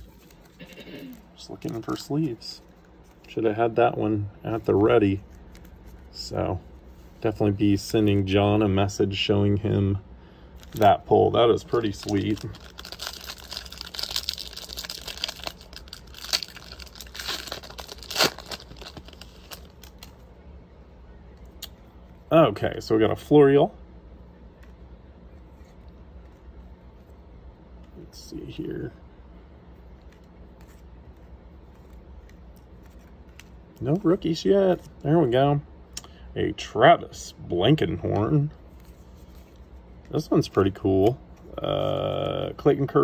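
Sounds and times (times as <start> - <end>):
person speaking: 0.0 - 10.1, 10.7 - 19.3, 33.6 - 38.7, 39.8 - 43.0
low steady hum: 0.0 - 43.0
plastic packaging crinkling: 10.6 - 20.2
cards clicking and sliding: 30.0 - 33.7.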